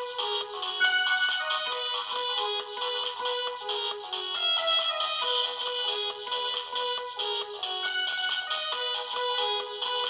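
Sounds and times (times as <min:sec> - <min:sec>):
electronic keyboard melody: 0:00.0 - 0:10.0.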